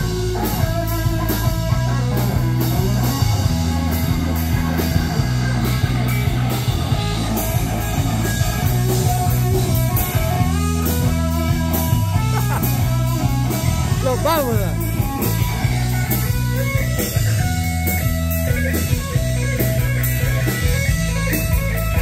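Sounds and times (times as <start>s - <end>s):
live rock band: 0.0s - 22.0s.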